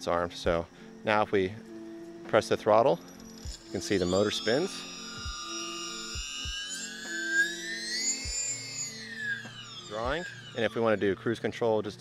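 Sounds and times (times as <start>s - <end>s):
background music with soft beat: 0.0s - 7.5s
electric motor whine: 0.0s - 12.0s.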